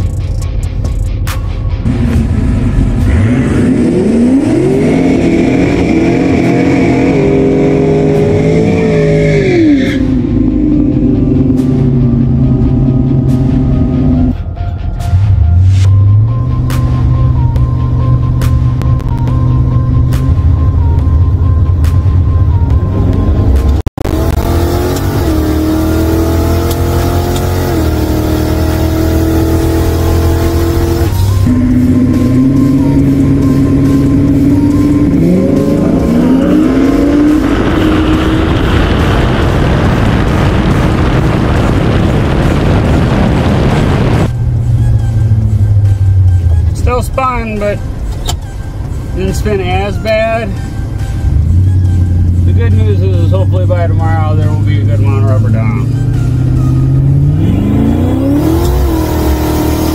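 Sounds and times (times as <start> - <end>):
heavy rushing noise: 0.0 - 17.1, 18.5 - 59.9
drag car engine revving: 1.8 - 14.4, 23.4 - 44.3, 51.4 - 59.9
man speaking: 52.5 - 55.9.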